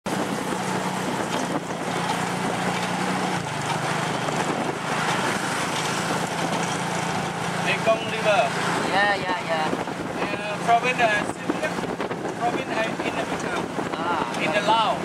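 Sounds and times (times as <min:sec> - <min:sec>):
road and wind noise: 0:00.0 - 0:15.0
small motorcycle engine running: 0:00.1 - 0:09.4.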